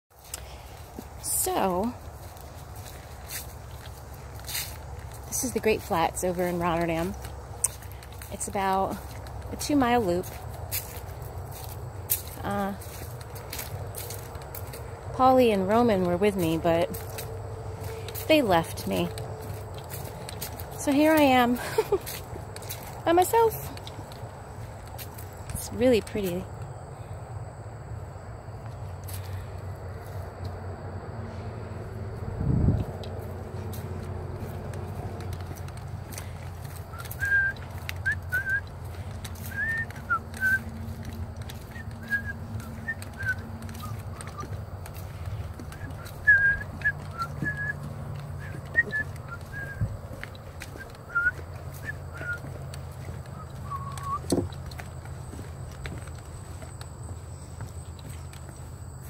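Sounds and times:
footsteps on wooden boardwalk: 0:00.1 - 0:27.1, 0:28.5 - 0:30.6, 0:31.2 - 0:59.0.

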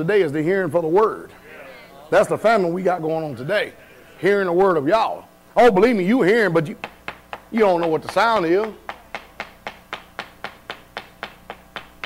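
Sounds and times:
faint hum: 0:00.0 - 0:12.0
sharp taps: 0:06.8 - 0:12.0.

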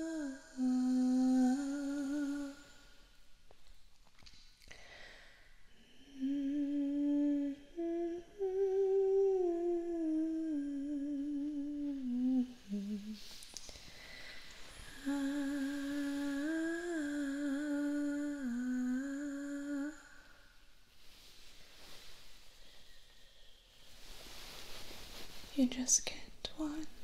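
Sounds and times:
woman humming a slow melody: 0:00.0 - 0:02.8, 0:05.8 - 0:13.4, 0:14.7 - 0:20.3.

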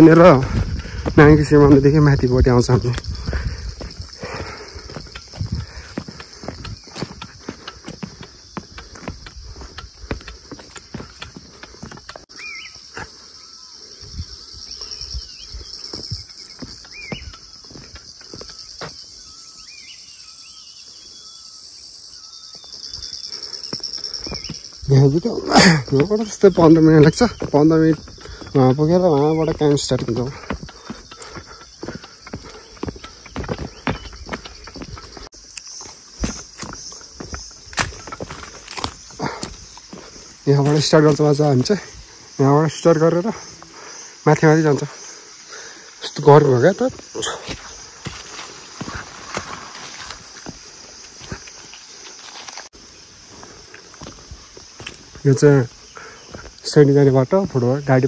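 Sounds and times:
footsteps on gravel: 0:00.0 - 0:13.2, 0:14.8 - 0:19.0, 0:22.8 - 0:45.7, 0:46.6 - 0:56.6.

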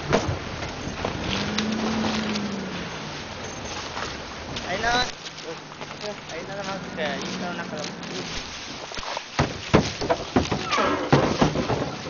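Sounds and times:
indistinct voices talking: 0:04.6 - 0:08.4
sharp knocks: 0:09.4 - 0:12.0.

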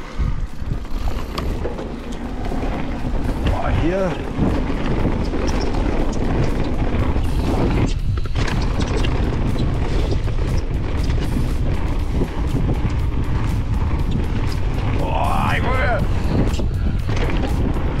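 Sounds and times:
bike clicks and rattles: 0:00.0 - 0:18.0
tyre rumble: 0:00.0 - 0:18.0
wind buffeting microphone: 0:00.0 - 0:18.0.

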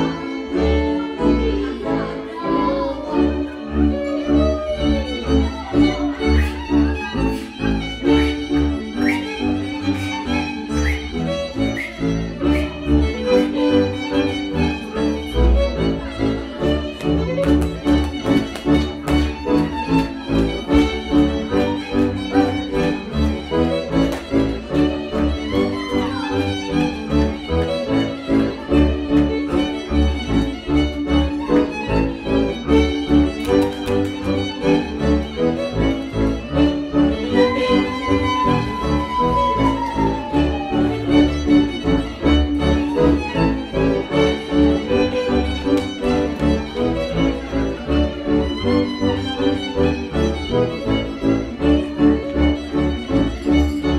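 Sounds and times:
bowed bass: 0:00.0 - 0:53.9
fiddles playing dance tune: 0:00.0 - 0:53.9.

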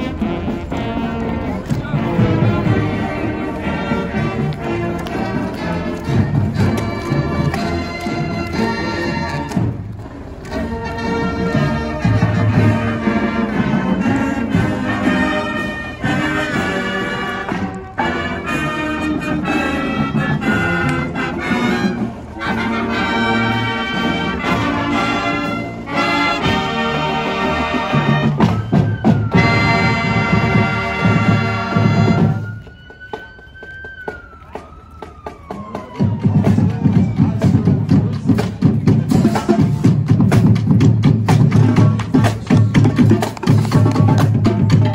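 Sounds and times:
marching band playing: 0:00.0 - 0:44.9
siren wailing: 0:13.3 - 0:37.9.

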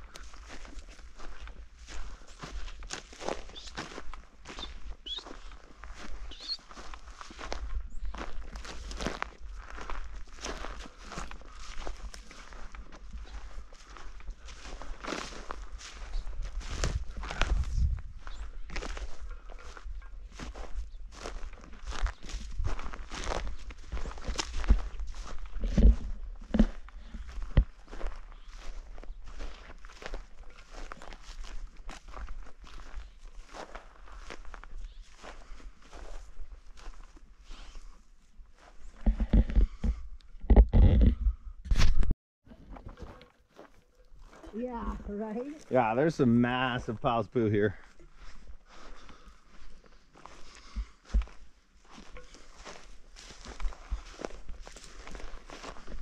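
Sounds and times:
footsteps on dry grass and dirt: 0:00.0 - 0:56.0.

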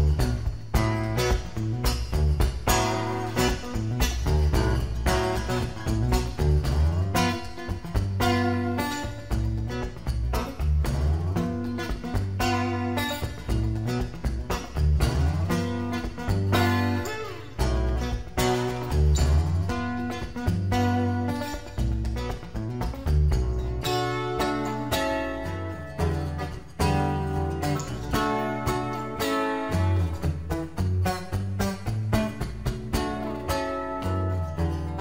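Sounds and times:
acoustic guitar playing: 0:00.0 - 0:35.0.

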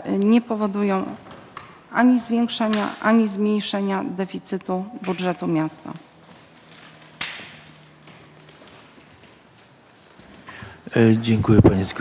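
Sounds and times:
paper rustle: 0:07.9 - 0:10.6.

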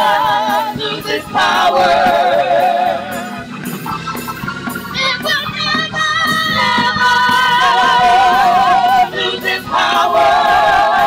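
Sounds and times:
women singing in harmony: 0:00.0 - 0:03.4, 0:05.0 - 0:11.0.

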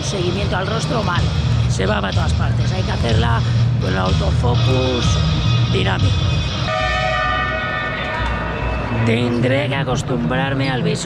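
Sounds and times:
horn-like held chord: 0:06.7 - 0:09.4.

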